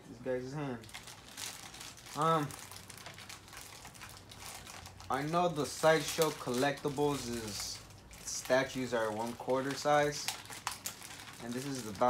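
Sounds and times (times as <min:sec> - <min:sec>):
plastic bag crinkling: 0:00.7 - 0:12.0.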